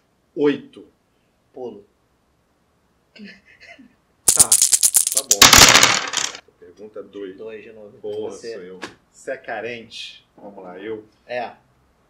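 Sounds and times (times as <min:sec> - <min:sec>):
die rattling in wooden box: 0:04.3 - 0:06.4.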